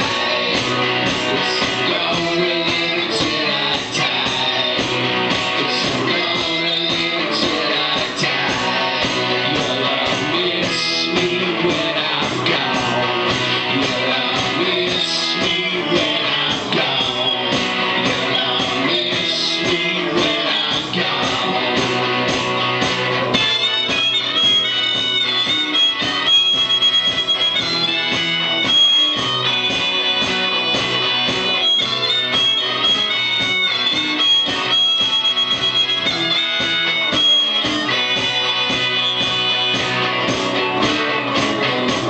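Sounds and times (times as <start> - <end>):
strummed guitars: 0.0 - 42.0
harmonica bent notes: 23.4 - 40.1.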